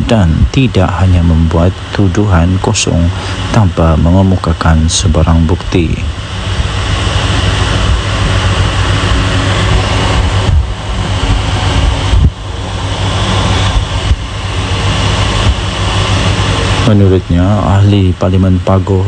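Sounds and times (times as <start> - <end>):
deep low hum: 0.0 - 19.0
loud steady rumbling: 0.0 - 19.0.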